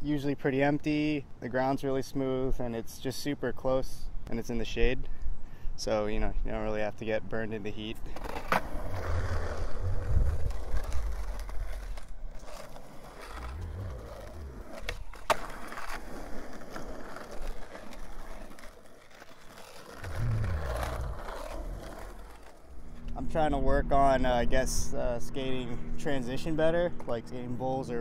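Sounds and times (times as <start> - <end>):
skateboard wheels rolling on asphalt: 6.5 - 24.6
skateboard clacking: 10.3 - 22.7.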